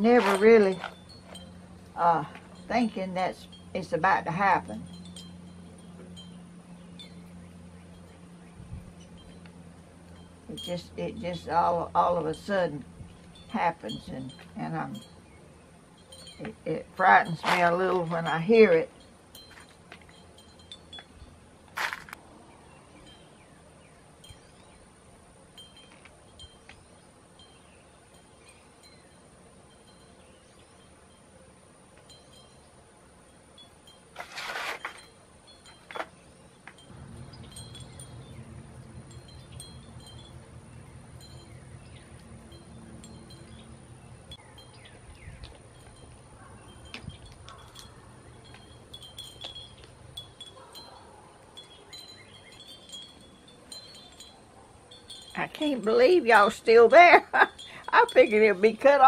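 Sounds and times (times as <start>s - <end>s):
glass wind chimes tinkling: 0.0s - 21.9s, 23.0s - 59.0s
low steady hum: 0.0s - 59.0s.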